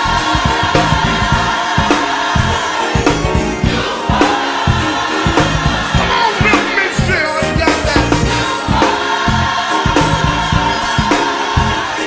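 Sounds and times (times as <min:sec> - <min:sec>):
band keeping steady beat: 0:00.0 - 0:12.0
choir singing held note: 0:00.0 - 0:12.0.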